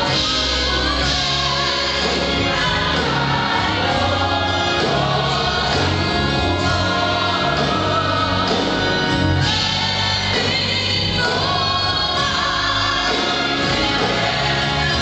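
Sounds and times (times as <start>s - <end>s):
group singing gospel: 0.0s - 15.0s
instrumental accompaniment: 0.0s - 15.0s
sustained bass notes: 0.0s - 15.0s.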